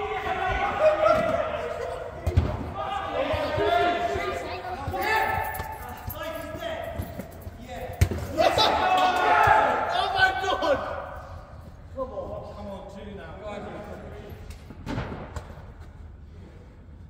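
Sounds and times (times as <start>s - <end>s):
players shouting: 0.0s - 6.6s, 8.0s - 11.4s.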